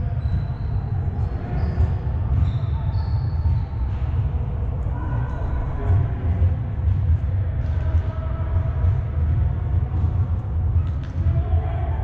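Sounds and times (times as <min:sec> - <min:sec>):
distant voices of players: 0:00.0 - 0:12.0.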